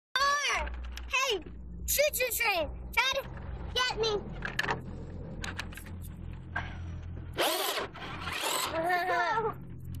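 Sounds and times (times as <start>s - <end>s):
toy truck motor whirring: 7.4s - 9.4s
child squealing: 8.6s - 9.6s.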